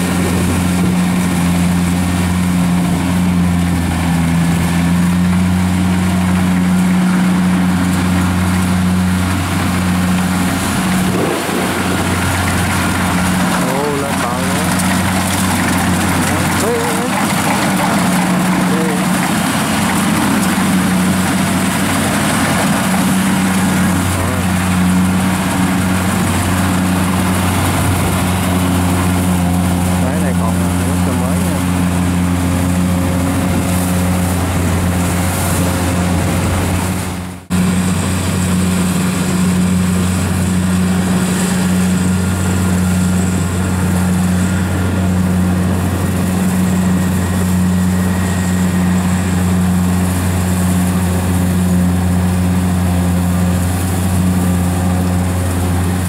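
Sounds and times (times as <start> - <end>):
combine harvester diesel engine: 0.0 - 56.0.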